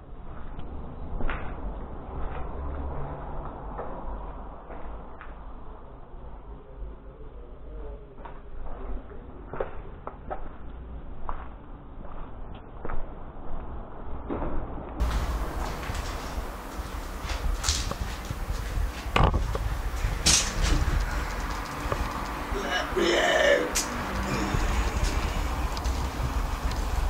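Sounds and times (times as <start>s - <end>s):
footsteps scuffing over debris: 15.0s - 22.5s
scattered clicks and knocks: 15.0s - 22.5s.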